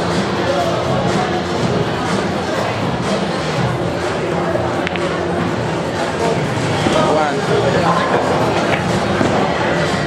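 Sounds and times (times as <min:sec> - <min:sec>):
overlapping background voices: 0:00.0 - 0:10.0
room noise: 0:00.0 - 0:10.0.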